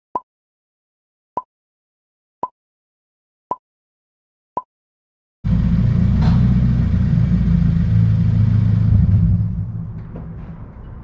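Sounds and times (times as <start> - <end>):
car engine exhaust rumble: 5.5 - 11.0.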